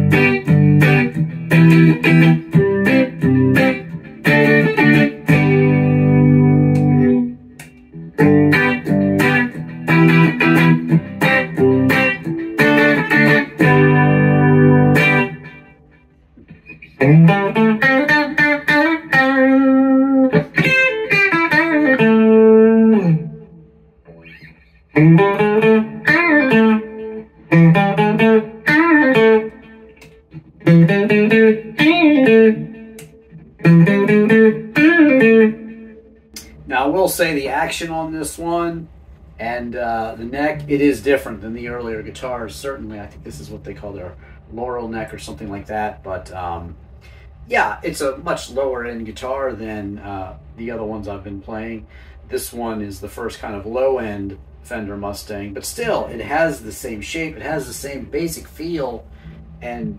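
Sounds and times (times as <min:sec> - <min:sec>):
electric guitar single notes: 0:00.0 - 0:36.7, 0:38.8 - 0:47.4, 0:57.2 - 0:59.9
electric guitar strummed chords: 0:00.0 - 0:36.8, 0:38.8 - 0:47.2, 0:57.4 - 0:59.9.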